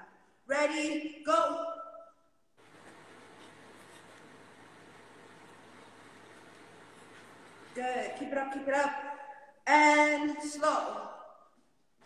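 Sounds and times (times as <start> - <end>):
faint microphone hiss: 2.5 - 11.4.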